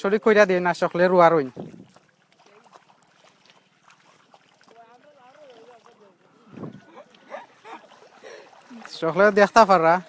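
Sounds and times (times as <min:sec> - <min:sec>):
small splashes in muddy water: 0:00.5 - 0:10.0.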